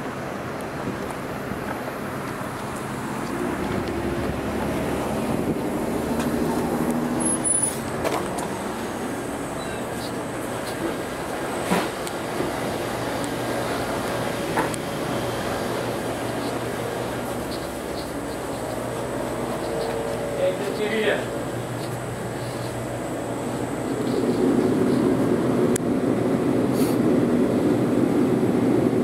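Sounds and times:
car engines passing: 0.0s - 29.0s.

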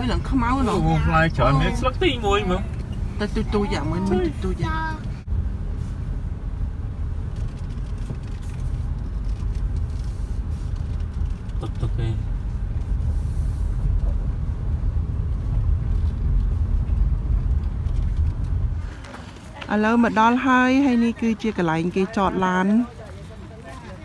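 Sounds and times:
low rumble of engine and tyres: 0.0s - 24.0s.

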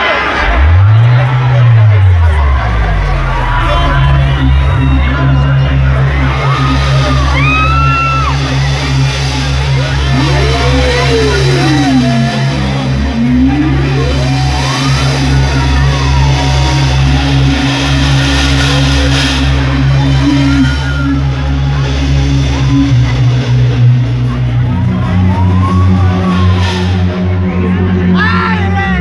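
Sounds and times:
crowd shouting: 0.0s - 29.0s
low drone with pitch sweeps: 0.0s - 29.0s.

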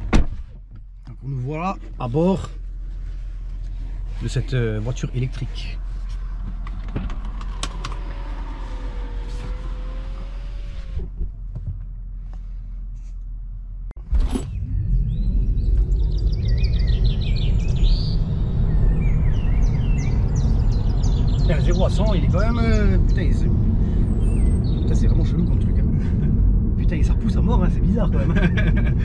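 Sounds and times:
road and tyre rumble in car cabin: 0.0s - 29.0s.

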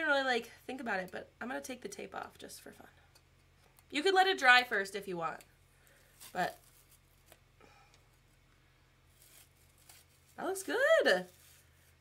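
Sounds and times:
tape being peeled off: 5.8s - 7.5s, 9.1s - 12.0s.

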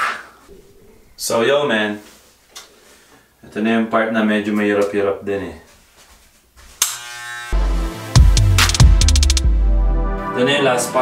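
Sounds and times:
electric hair clipper buzzing: 6.8s - 9.4s
bass-heavy background music: 7.6s - 11.0s.

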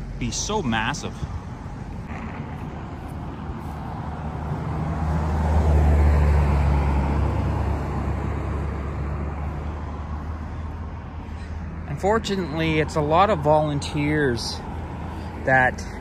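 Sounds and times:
vehicle engine rumble: 0.0s - 16.0s.

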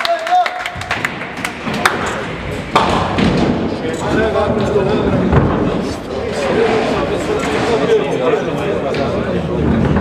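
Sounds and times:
bowling ball rolling on wooden lane: 0.9s - 7.9s, 8.9s - 10.0s
loud knock: 2.7s - 3.8s.

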